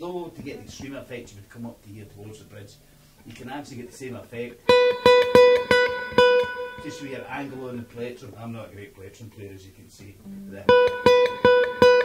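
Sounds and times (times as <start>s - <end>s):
nylon-string guitar note plucked: 0.4s - 7.9s, 10.2s - 12.0s.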